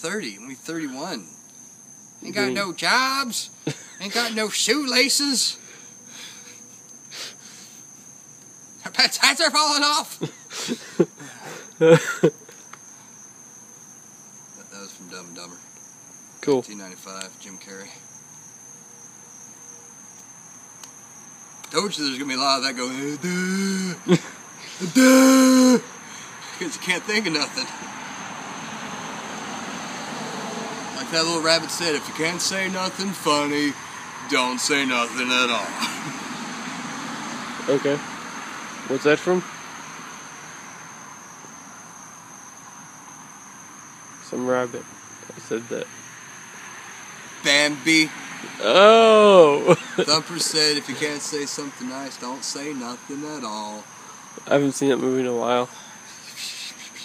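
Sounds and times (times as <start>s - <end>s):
faint hiss: 0.0s - 13.5s, 37.6s - 57.0s
crickets trilling: 0.0s - 57.0s.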